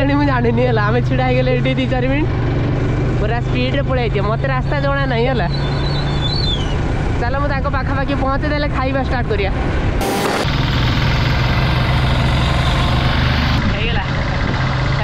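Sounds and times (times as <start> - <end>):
motorcycle engine running: 10.0 - 15.0.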